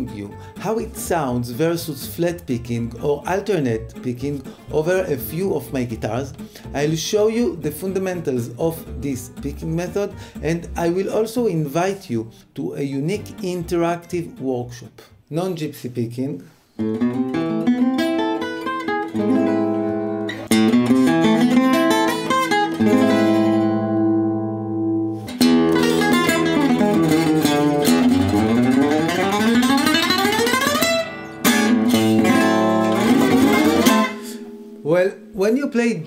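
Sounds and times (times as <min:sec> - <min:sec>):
acoustic guitar played with a pick: 0:00.0 - 0:11.2, 0:16.6 - 0:35.4.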